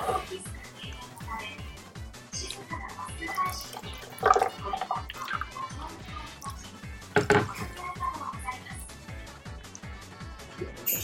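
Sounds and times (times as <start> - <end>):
background music with steady beat: 0.0 - 11.0
eating with a spoon: 2.4 - 6.7.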